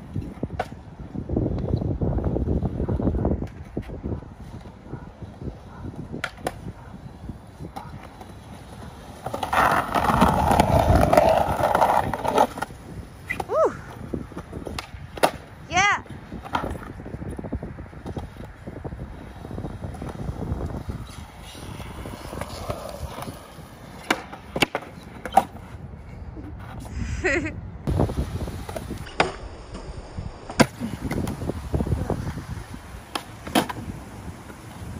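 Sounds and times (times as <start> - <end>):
skateboard wheels rolling on concrete: 0.0 - 34.9
skateboard clacks: 2.7 - 15.5, 18.0 - 25.8, 30.5 - 34.9
skateboard grinding on curb: 3.5 - 15.5, 17.9 - 25.8, 27.8 - 34.9.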